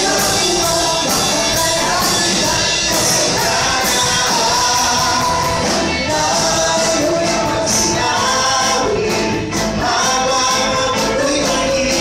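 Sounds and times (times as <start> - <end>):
group singing: 0.0 - 12.0
live band with guitars: 0.0 - 12.0.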